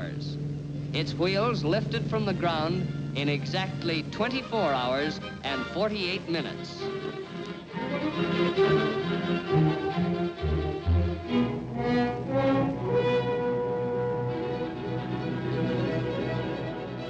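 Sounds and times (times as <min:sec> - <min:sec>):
orchestral strings music: 0:00.0 - 0:17.0.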